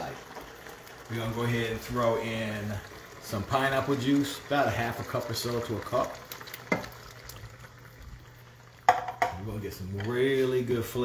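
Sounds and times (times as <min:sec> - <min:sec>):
liquid pouring: 0:00.0 - 0:10.0
sauce bubbling: 0:00.0 - 0:11.0.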